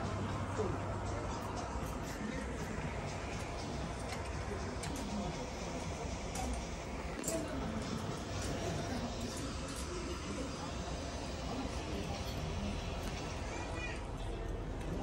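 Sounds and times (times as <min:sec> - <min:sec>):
indistinct voices: 0:00.0 - 0:15.0.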